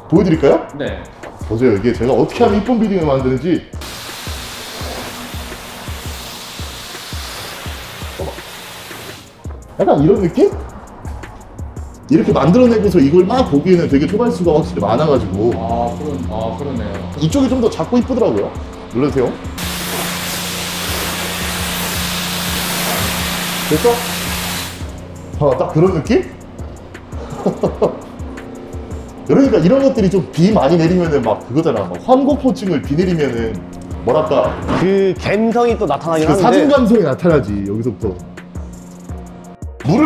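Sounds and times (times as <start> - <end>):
pressure washer spray on car: 3.8 - 9.4, 19.6 - 25.1.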